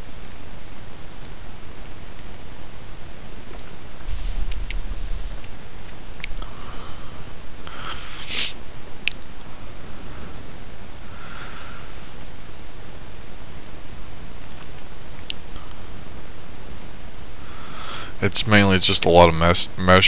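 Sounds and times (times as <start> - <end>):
microphone hiss: 0.0 - 20.0
soft breathing: 6.3 - 8.6, 9.6 - 12.3, 17.4 - 18.2.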